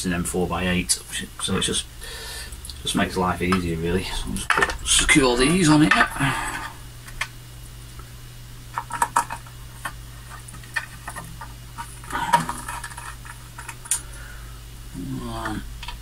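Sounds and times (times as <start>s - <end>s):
steady low hum: 0.0s - 16.0s
metal parts clicking and tapping: 8.8s - 14.0s.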